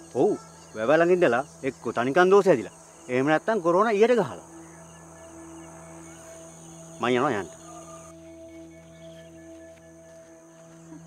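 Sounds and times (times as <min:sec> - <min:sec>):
insects droning: 0:00.0 - 0:11.0
man speaking: 0:07.0 - 0:07.6.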